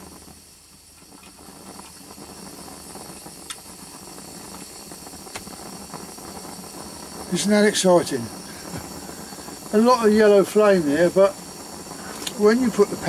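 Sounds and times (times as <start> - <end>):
stove burner hissing: 0.0 - 13.0.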